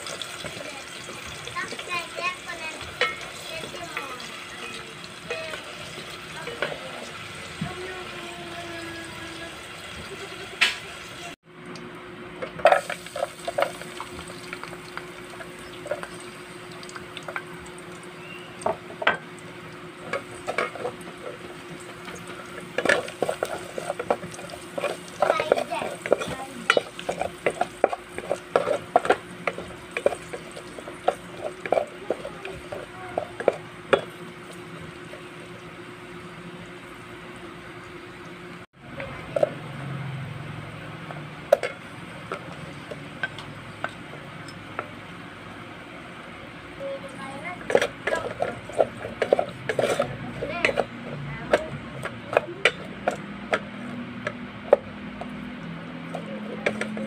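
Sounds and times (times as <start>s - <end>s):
garlic sizzling in oil: 0.0s - 11.4s, 12.6s - 38.6s
wooden spoon knocking and scraping pot: 20.0s - 35.3s, 47.5s - 55.4s, 56.0s - 57.0s.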